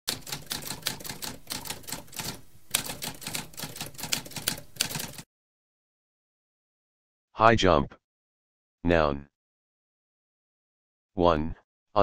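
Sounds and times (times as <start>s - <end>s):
typewriter typing: 0.1s - 5.2s.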